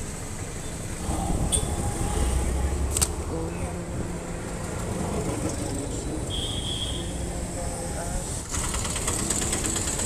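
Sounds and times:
vehicle engines in traffic: 0:00.0 - 0:10.0.

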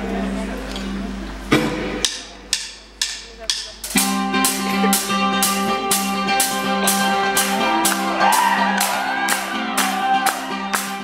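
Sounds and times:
live rock band: 0:03.8 - 0:11.0.

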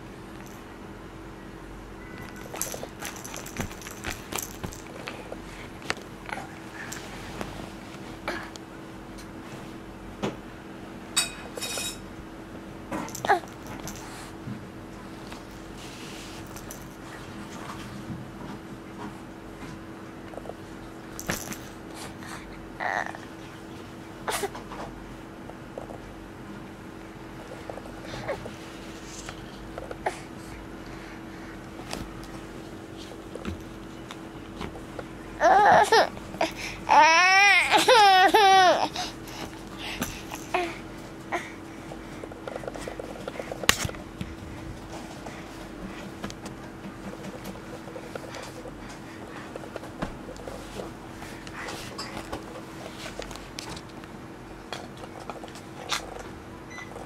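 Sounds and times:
constant low hum: 0:00.0 - 0:57.0.

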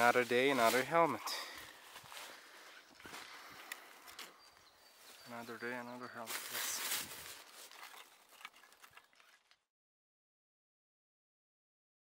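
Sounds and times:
footsteps in dry leaves: 0:00.0 - 0:09.4.

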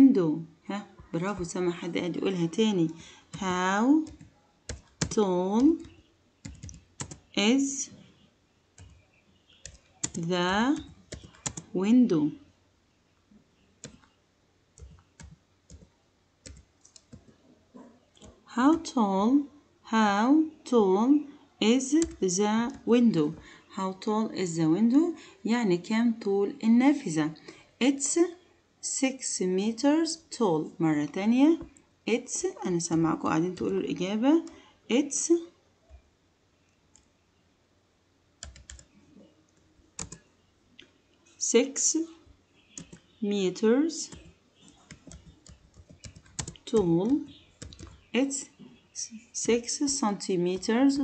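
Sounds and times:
keyboard keys typing: 0:02.8 - 0:07.3, 0:08.8 - 0:09.0, 0:09.6 - 0:11.8, 0:13.8 - 0:14.2, 0:14.8 - 0:17.4, 0:18.2 - 0:19.0, 0:21.9 - 0:23.4, 0:32.6 - 0:34.6, 0:38.4 - 0:39.0, 0:40.0 - 0:40.3, 0:42.8 - 0:43.1, 0:44.0 - 0:48.1.

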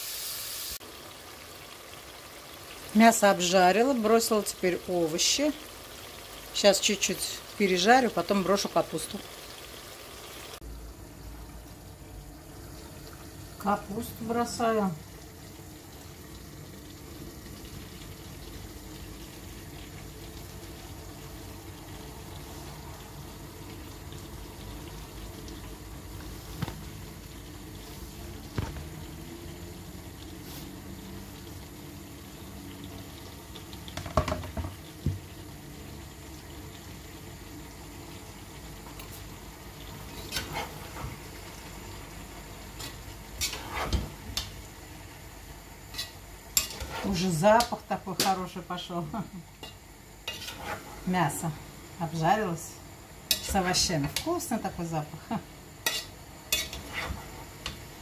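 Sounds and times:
food sizzling in a pan: 0:00.0 - 0:58.0.

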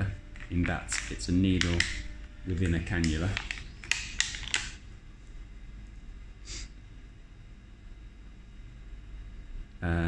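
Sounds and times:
quiet handling: 0:00.0 - 0:06.2
plastic packaging crinkle: 0:00.2 - 0:04.8
sharp plastic clicks: 0:00.6 - 0:02.0, 0:02.6 - 0:04.8.

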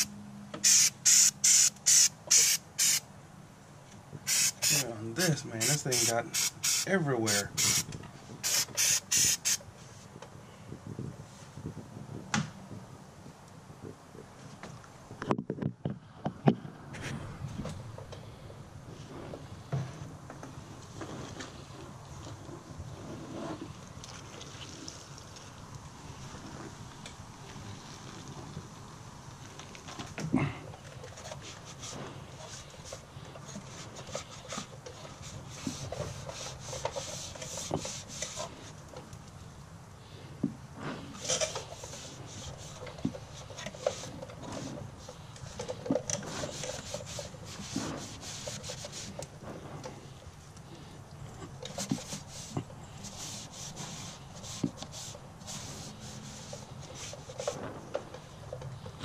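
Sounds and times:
cloth rag scrubbing: 0:46.3 - 0:49.2, 0:51.7 - 0:57.6.

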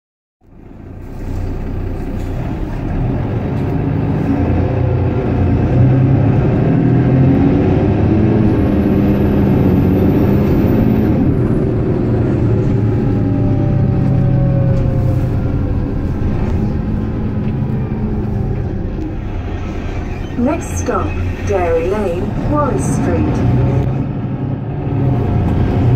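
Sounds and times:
bus engine running: 0:00.4 - 0:25.9.

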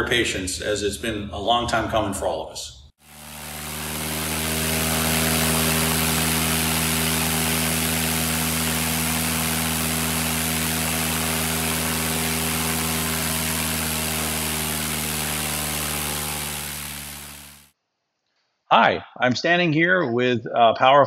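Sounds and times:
propeller plane engine running: 0:03.0 - 0:17.7.

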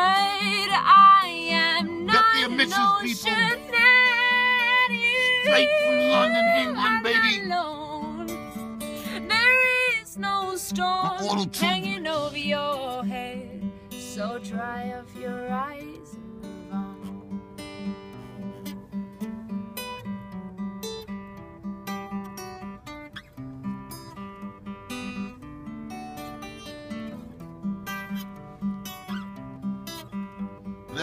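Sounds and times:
acoustic guitar picked and strummed: 0:00.0 - 0:31.0.

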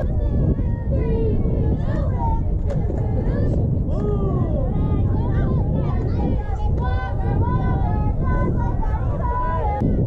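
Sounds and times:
distant voices calling and chanting: 0:00.0 - 0:10.0
wind rumble on microphone: 0:00.0 - 0:10.0.

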